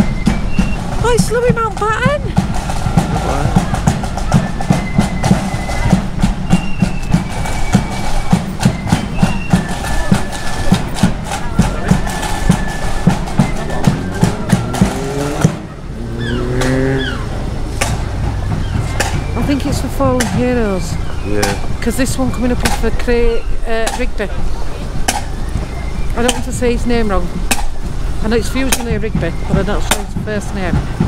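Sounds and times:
marching band music: 0.0s - 31.0s.

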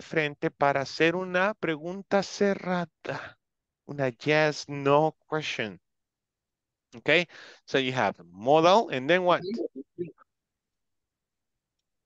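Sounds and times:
man speaking: 0.0s - 3.3s, 3.9s - 5.8s, 7.0s - 9.6s.

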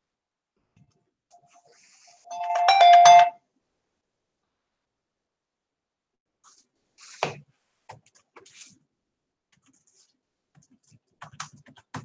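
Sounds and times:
mobile phone ringing chime: 2.3s - 3.4s.

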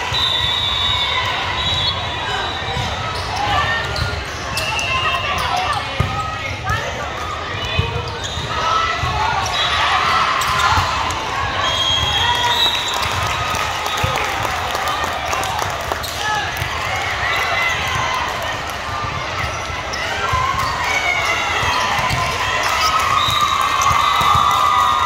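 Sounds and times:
voices in echoing hall: 0.0s - 25.0s
volleyball hits: 20.2s - 24.7s.

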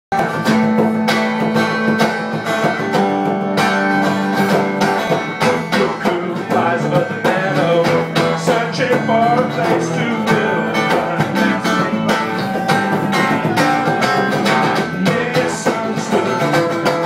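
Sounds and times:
acoustic guitars strummed and picked: 0.1s - 17.0s.

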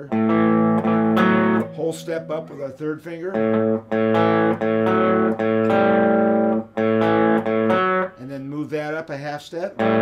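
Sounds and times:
electric guitar ringing notes: 0.0s - 8.3s, 9.8s - 10.0s
man speaking: 1.6s - 3.4s, 8.2s - 9.8s.

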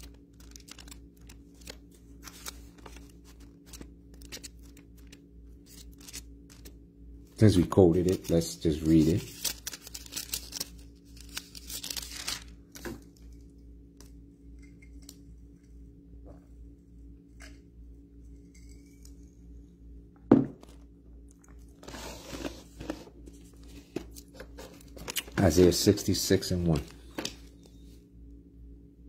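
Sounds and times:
thin pages rustling: 0.0s - 6.7s, 9.1s - 13.0s
faint low hum: 0.0s - 29.0s.

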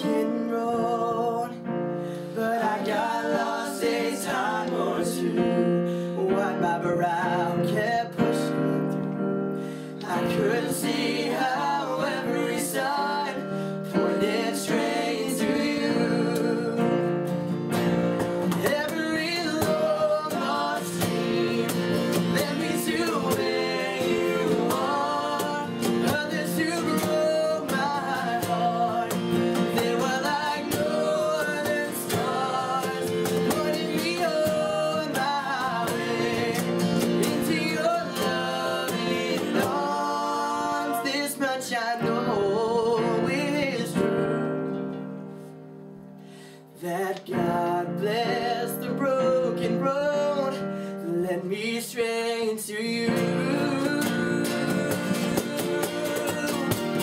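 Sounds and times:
young men singing together: 0.0s - 8.6s, 10.0s - 17.2s, 18.5s - 44.1s, 46.9s - 50.6s, 51.4s - 57.0s
strummed acoustic guitars: 0.0s - 45.6s, 53.0s - 57.0s
keyboard: 0.0s - 50.9s
cajon: 17.8s - 40.2s, 53.6s - 57.0s.

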